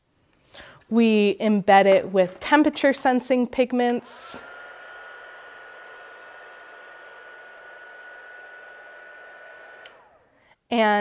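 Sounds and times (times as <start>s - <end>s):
heat gun blowing air: 3.9s - 10.4s
fan motor whine: 4.0s - 10.3s.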